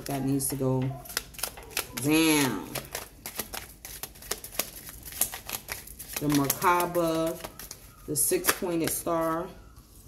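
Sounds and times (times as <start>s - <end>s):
cards being shuffled: 1.0s - 9.0s.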